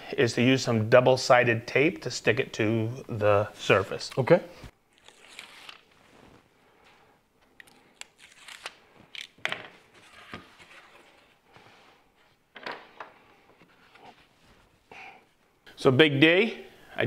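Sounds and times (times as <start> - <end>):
knife slicing tape: 4.9 - 5.9, 8.0 - 8.8.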